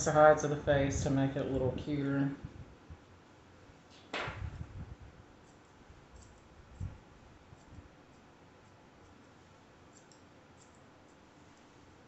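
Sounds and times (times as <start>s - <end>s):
scissors snipping hair: 9.8s - 11.7s.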